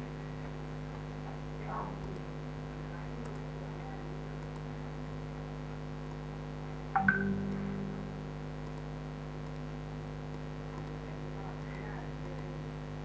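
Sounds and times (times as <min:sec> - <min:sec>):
electrical mains hum: 0:00.0 - 0:13.0
short pitched tone: 0:07.0 - 0:08.4.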